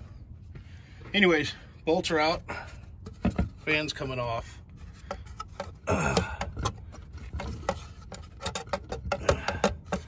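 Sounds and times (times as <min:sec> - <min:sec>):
metal fan hardware knocking: 0:05.0 - 0:10.0.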